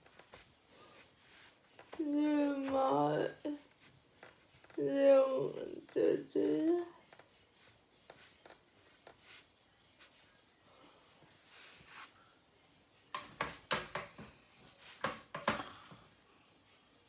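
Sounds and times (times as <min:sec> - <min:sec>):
rustles and knocks of objects: 0:13.1 - 0:16.1.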